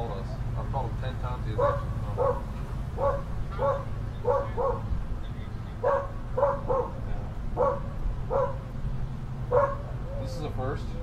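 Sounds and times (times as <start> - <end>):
dog barking: 1.6 - 4.9, 5.8 - 7.0, 7.6 - 8.7, 9.5 - 10.0.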